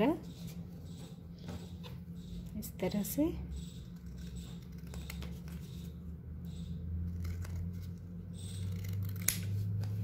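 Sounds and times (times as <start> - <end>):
scissors snipping cardboard: 7.2 - 9.6
scissor blades clicking: 8.5 - 9.6.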